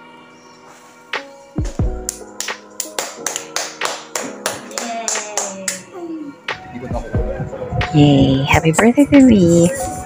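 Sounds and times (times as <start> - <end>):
music playing: 0.0 - 10.0
hands clapping: 1.8 - 5.9.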